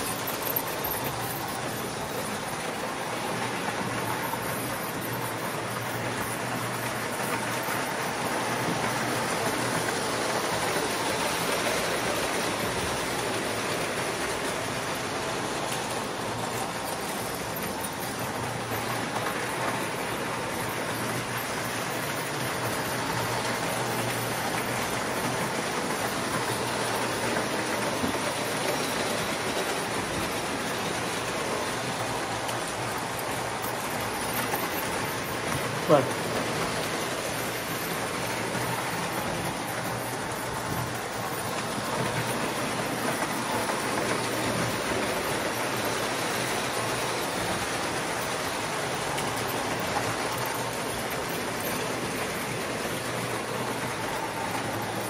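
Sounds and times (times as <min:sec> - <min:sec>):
toy train wheels rumbling on rails: 0:00.0 - 0:55.0.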